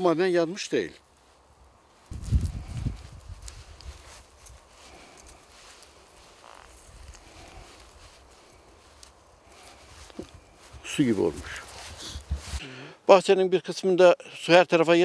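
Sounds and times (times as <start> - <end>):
faint rustling of blossom: 0.0 - 12.7
low rumbling buffets on microphone: 2.1 - 8.8.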